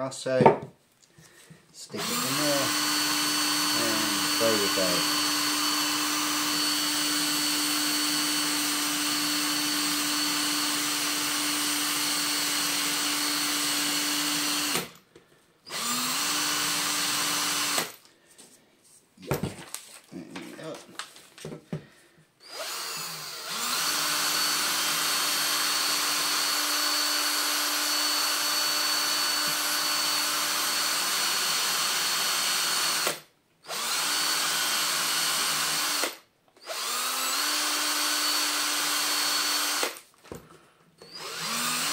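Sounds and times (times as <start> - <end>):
cordless drill running: 1.9 - 15.0, 15.6 - 18.1, 22.4 - 40.1, 41.0 - 41.9.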